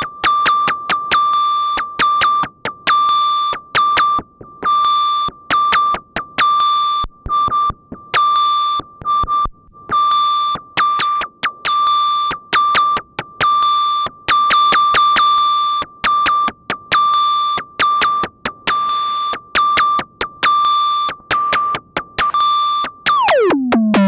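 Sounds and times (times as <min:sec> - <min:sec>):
synthesizer beep-like notes: 0:23.1 - 0:24.0.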